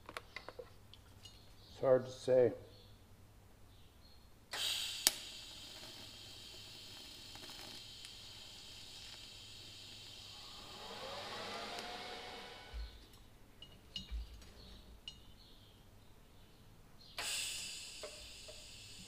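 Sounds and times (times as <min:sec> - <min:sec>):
welding arc hissing: 0:04.5 - 0:12.9, 0:17.2 - 0:19.0.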